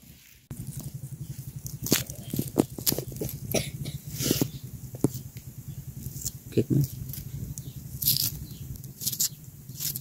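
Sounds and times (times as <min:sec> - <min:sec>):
onion skin crackling and scraping: 0:00.1 - 0:10.0.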